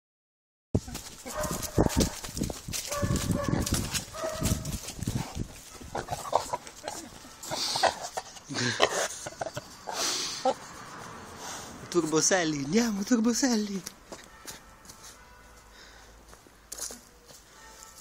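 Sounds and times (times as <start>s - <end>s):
pig grunting and squealing: 5.9s - 10.6s.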